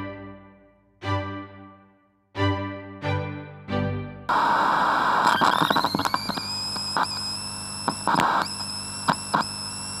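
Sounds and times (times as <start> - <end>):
static noise burst: 4.3 - 10.0
high-pitched electronic tones: 5.2 - 9.9.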